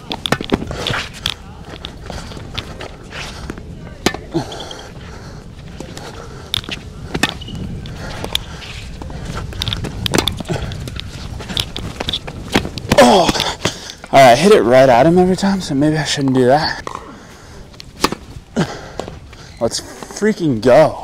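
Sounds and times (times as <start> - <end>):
tennis ball struck by rackets: 0.1 - 1.2, 4.0 - 4.3, 7.1 - 7.5, 10.1 - 10.5, 17.9 - 18.3.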